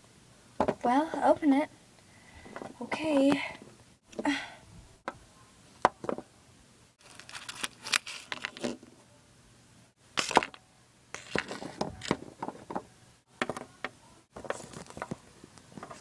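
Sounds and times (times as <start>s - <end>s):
paper crinkling and rustling: 7.0s - 8.8s, 11.2s - 12.4s, 14.3s - 16.0s.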